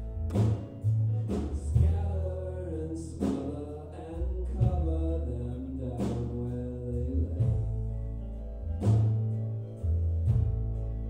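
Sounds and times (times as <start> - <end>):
vocals: 0.0 - 8.3
live rock band playing: 0.0 - 11.0.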